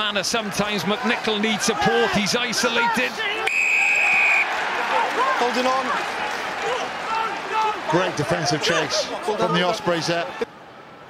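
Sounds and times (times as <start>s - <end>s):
stadium crowd noise: 0.0s - 11.0s
referee's whistle blast: 3.4s - 4.5s.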